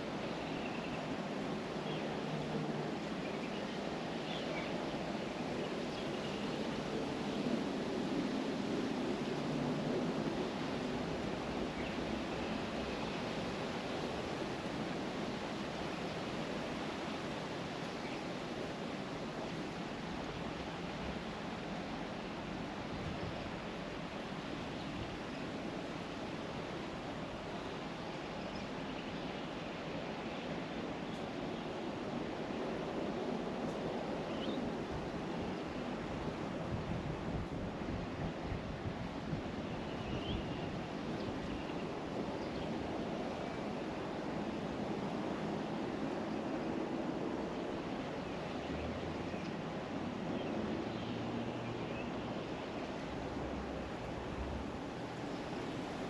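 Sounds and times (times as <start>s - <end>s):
steady rushing noise: 40.9s - 56.0s.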